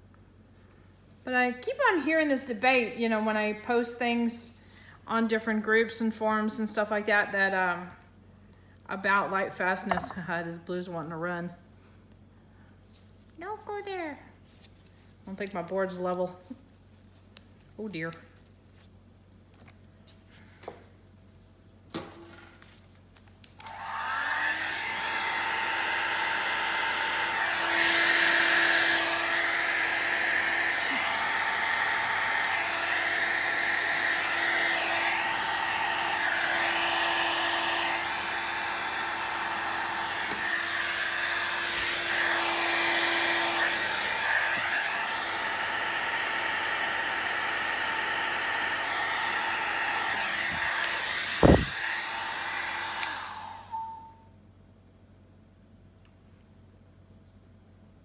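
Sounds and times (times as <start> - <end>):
electric blower running: 9.9 - 10.2, 23.6 - 54.0.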